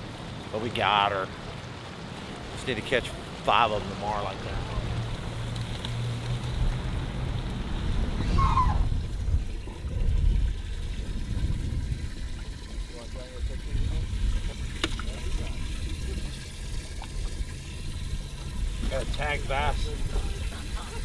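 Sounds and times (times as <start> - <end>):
water trickling and splashing: 0.0 - 21.0
steady low rumble: 3.5 - 21.0.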